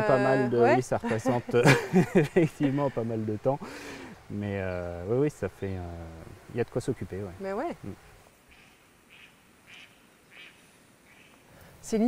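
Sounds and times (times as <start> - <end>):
faint bird calls: 7.5 - 11.7.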